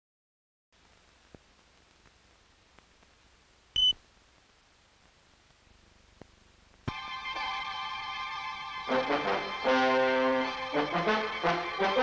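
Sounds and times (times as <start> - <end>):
film soundtrack hiss: 0.8 - 12.0
short high-pitched beep: 3.8 - 4.0.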